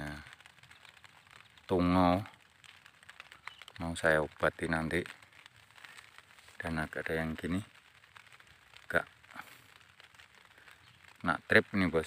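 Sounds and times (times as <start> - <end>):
rustling of plant leaves: 0.0 - 12.0.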